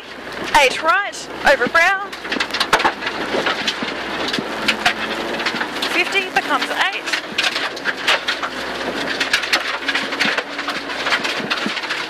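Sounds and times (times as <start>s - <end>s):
gravel rattling against underbody: 0.0s - 12.0s
rally car engine: 0.0s - 12.0s.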